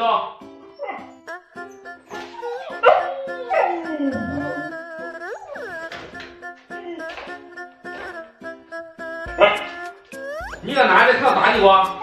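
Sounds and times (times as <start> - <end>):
background music: 0.0 - 12.0
dog barking: 2.1 - 3.9, 9.4 - 9.8.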